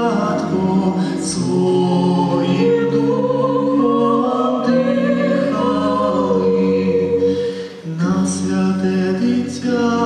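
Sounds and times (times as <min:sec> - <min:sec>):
vocal ensemble singing in harmony: 0:00.0 - 0:10.0.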